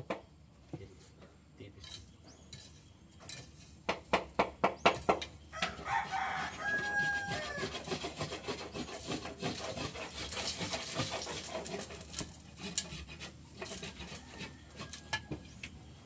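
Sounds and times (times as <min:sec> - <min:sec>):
chicken drawn-out call: 0:05.5 - 0:09.2, 0:13.6 - 0:15.8.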